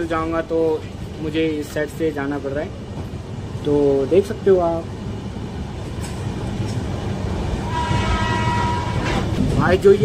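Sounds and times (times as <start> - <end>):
train rumbling: 0.0 - 10.0
train horn: 7.6 - 9.4.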